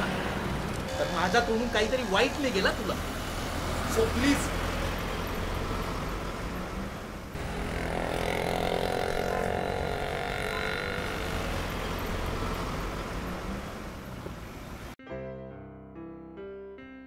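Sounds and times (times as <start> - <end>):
traffic on wet road: 0.0 - 15.0.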